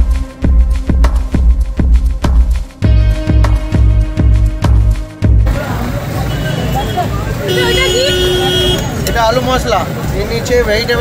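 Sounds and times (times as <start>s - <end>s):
traffic rumble: 4.0s - 11.0s.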